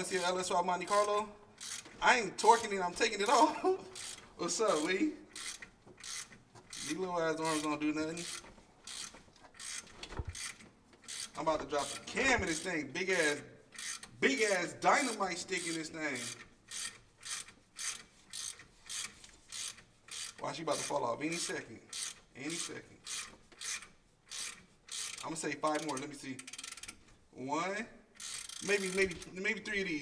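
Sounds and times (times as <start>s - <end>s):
ratchet wrench clicking: 0.0s - 2.7s, 4.0s - 27.0s, 28.2s - 29.3s.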